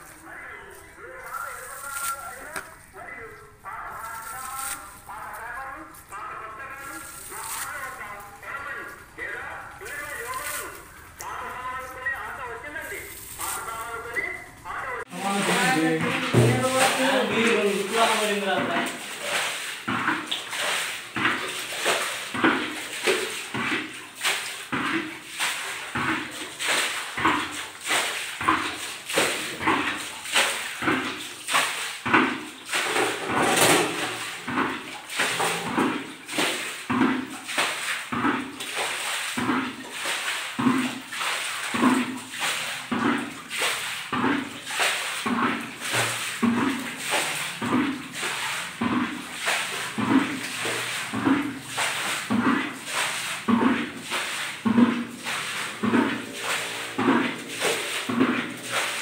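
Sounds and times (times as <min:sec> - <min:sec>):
people talking: 0:00.0 - 0:20.3.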